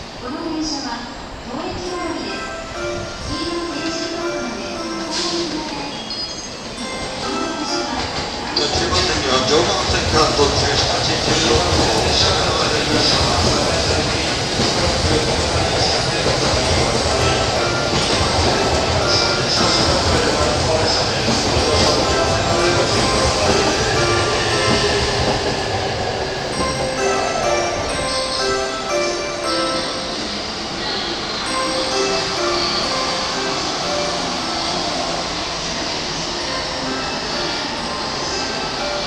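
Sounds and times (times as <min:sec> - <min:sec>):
train passing with rumble and hiss: 0:00.0 - 0:39.0.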